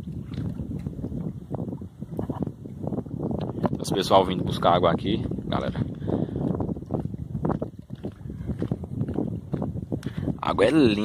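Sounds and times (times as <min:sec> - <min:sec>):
small waves lapping against rock: 0:00.0 - 0:02.8, 0:05.4 - 0:10.3
wind rumbling on microphone: 0:00.0 - 0:11.0.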